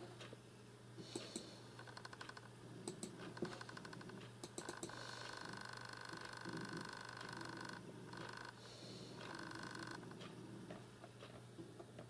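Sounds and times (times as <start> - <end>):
wheezy breathing: 1.0 - 1.8, 4.8 - 7.5, 8.5 - 10.8.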